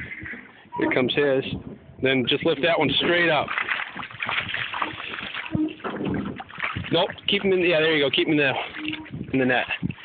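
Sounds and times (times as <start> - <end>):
water splashing and sloshing: 2.1 - 10.0.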